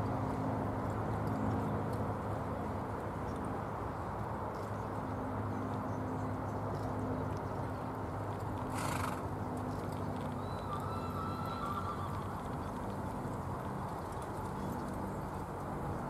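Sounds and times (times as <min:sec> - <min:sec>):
pony whinnying: 0:10.4 - 0:12.4.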